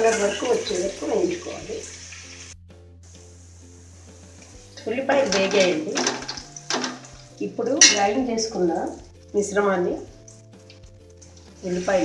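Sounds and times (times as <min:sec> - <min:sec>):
onions frying: 0:00.0 - 0:12.0
person talking: 0:04.8 - 0:06.2, 0:07.4 - 0:10.0
ladle clinking against a metal pot: 0:05.2 - 0:08.3.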